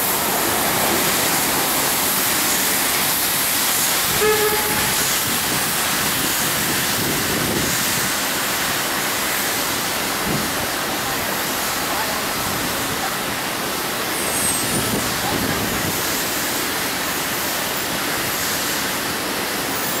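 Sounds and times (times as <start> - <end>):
street traffic noise: 0.0 - 20.0
vehicle horn toot: 4.2 - 5.0.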